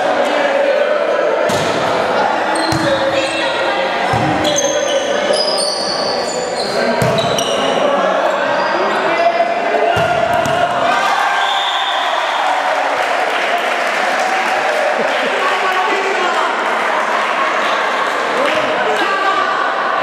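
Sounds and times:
chatter of students: 0.0s - 10.9s, 14.1s - 20.0s
sneakers squeaking on gym floor: 2.5s - 9.1s
volleyball being struck: 9.9s - 10.9s.

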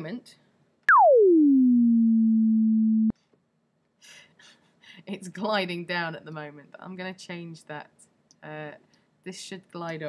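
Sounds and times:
synthesizer tone sliding down in pitch: 0.9s - 3.1s.

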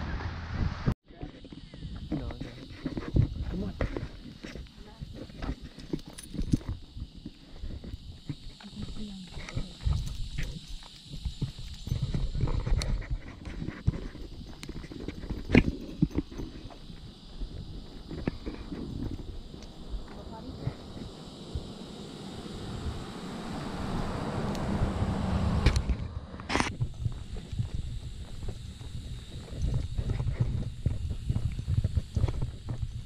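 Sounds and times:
high-pitched background hiss: 1.1s - 33.0s
footsteps on sidewalk: 1.6s - 22.1s, 24.5s - 33.0s.

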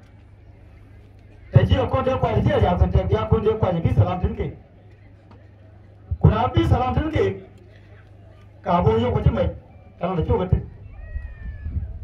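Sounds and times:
man speaking into microphone: 1.5s - 4.6s, 6.1s - 7.5s, 8.6s - 10.7s.

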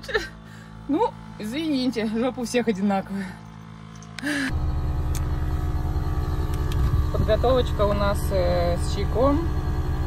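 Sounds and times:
vehicle engine idling: 0.0s - 10.0s.

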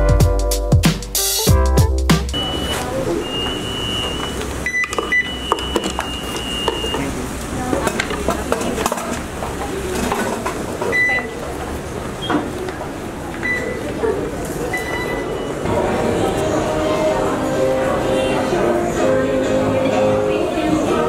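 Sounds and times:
short lower beeps: 2.3s - 7.1s, 14.7s - 15.7s
people chattering: 2.4s - 21.0s.

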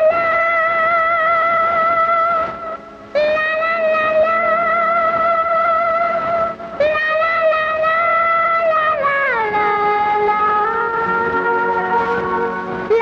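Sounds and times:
woman singing wordless notes: 0.0s - 13.0s.

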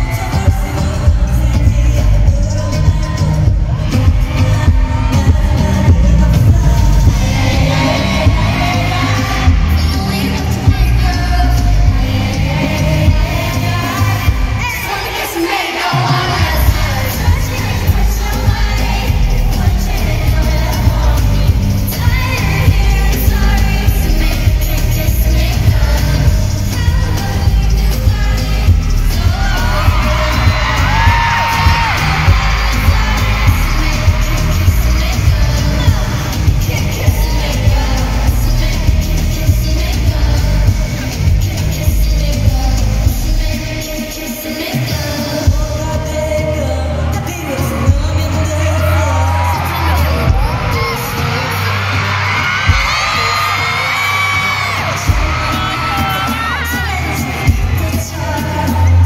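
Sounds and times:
heavy bass beat: 0.0s - 14.8s, 16.3s - 47.0s, 47.6s - 59.0s
pop song over sound system: 0.0s - 59.0s
woman singing: 0.0s - 59.0s.

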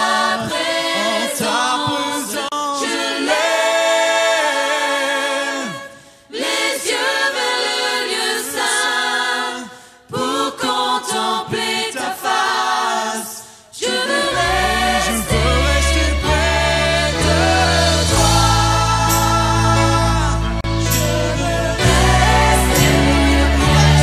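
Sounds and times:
choir singing a cappella: 0.0s - 24.0s
low bass notes: 14.4s - 24.0s.

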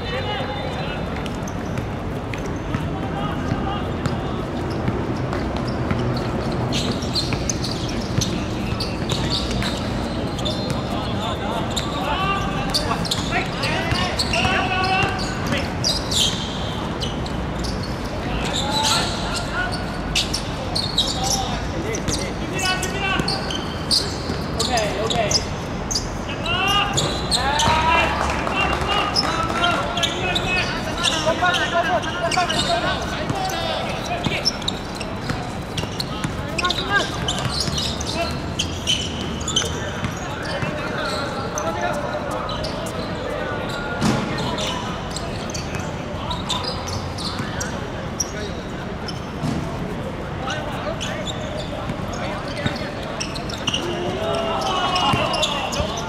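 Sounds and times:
players shouting: 5.9s - 45.6s, 52.2s - 56.0s.

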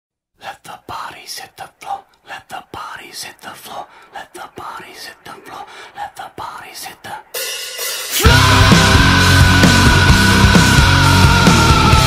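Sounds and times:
person whispering: 0.4s - 7.4s.

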